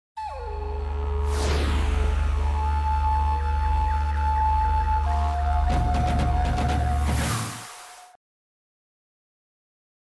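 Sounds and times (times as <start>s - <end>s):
long held high tone: 0.2s - 7.1s
low electronic drone: 0.2s - 7.2s.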